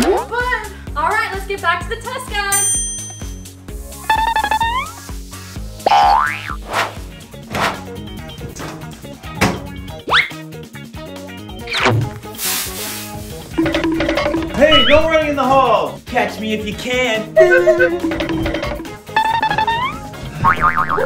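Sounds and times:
upbeat background music: 0.0 - 21.0
cartoon boing: 5.9 - 6.6, 17.4 - 21.0.

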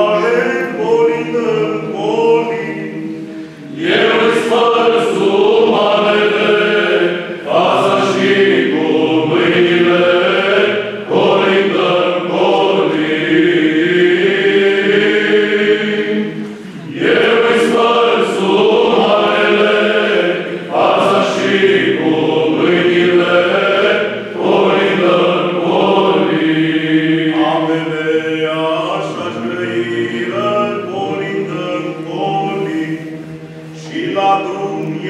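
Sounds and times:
male choir singing a cappella: 0.0 - 35.0.

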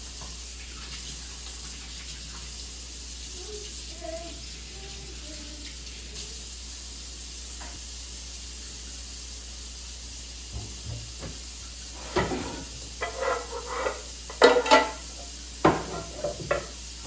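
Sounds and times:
faucet running into a sink: 0.0 - 17.0.

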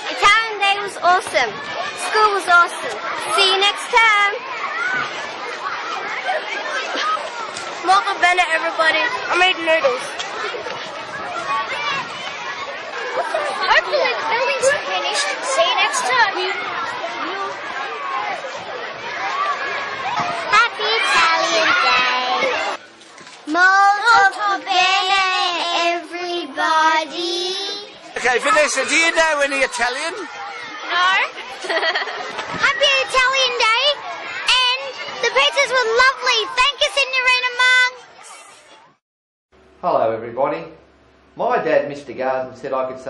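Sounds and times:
children chattering and calling: 0.0 - 39.0.

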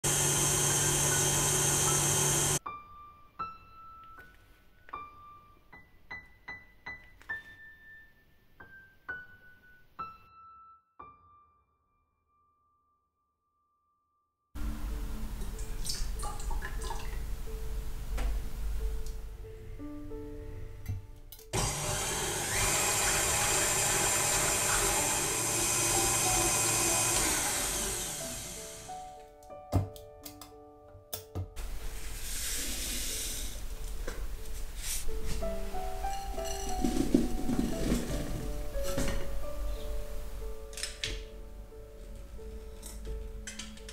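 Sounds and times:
stand mixer motor hum: 0.0 - 2.6, 21.6 - 28.9
whisk whirring through foam: 0.0 - 2.6, 21.6 - 28.9.

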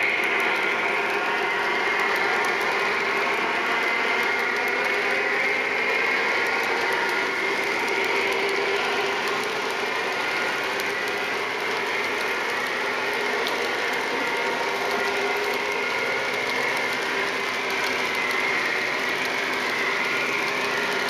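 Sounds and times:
model train motor whirring: 0.0 - 21.0
wheels rolling on track: 0.0 - 21.0.

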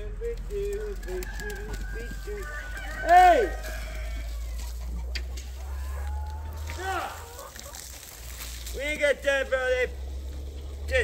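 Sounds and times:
chickens clucking: 0.0 - 10.9
chicken squawk: 1.6 - 8.1.

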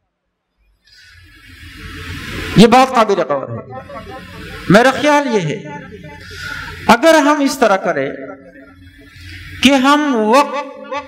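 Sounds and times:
breath hiss on microphone: 0.8 - 2.6, 6.2 - 6.9.

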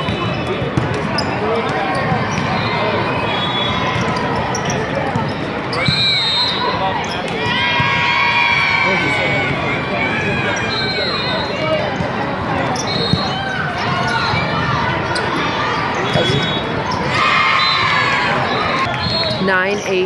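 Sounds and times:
players and spectators shouting: 0.0 - 19.6.

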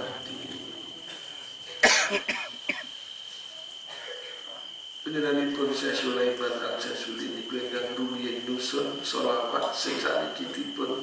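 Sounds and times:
man coughing: 1.8 - 2.9.

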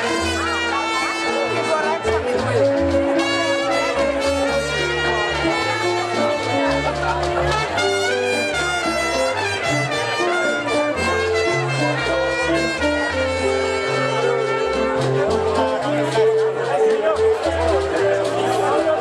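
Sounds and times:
crowd chatter: 0.0 - 19.0
live salsa band playing: 0.0 - 19.0.

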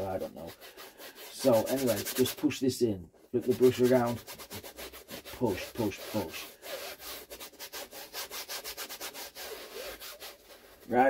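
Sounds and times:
bristle brush scrubbing canvas: 0.0 - 2.6, 3.4 - 11.0.

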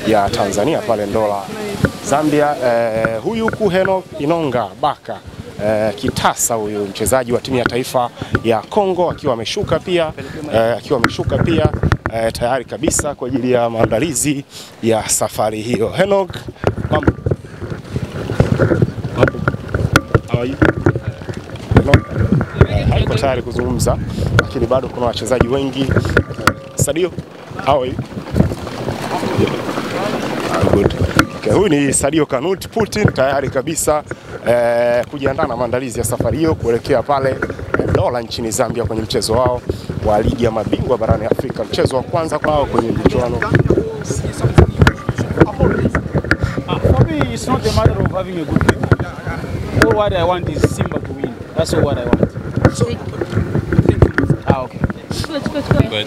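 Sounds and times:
people talking nearby: 0.0 - 56.0
wind buffeting microphone: 0.0 - 56.0
low rumble: 26.2 - 31.6.

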